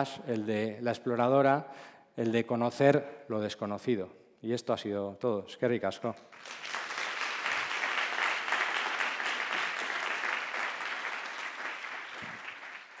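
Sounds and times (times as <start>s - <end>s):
audience applauding: 6.3s - 13.0s.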